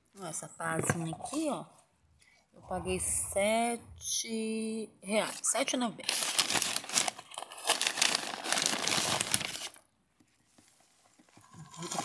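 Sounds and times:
crinkling rustling handling noise: 6.0 - 12.0.

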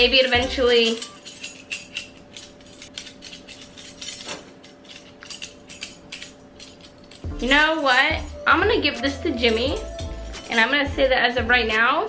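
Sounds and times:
metal puzzle pieces clinking: 0.0 - 10.8.

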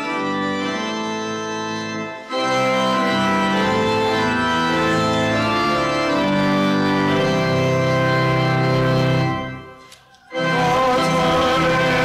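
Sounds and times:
organ playing sustained chords: 0.0 - 12.0.

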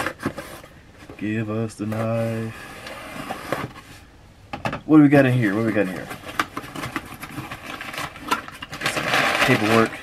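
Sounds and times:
cardboard and paper rustling: 0.0 - 4.1, 5.3 - 10.0.

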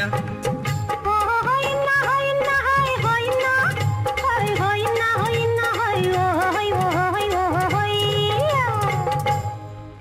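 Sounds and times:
woman singing: 0.9 - 9.5.

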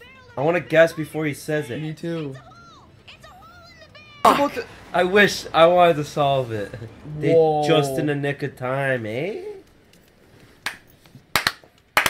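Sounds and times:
hand claps: 10.6 - 12.0.

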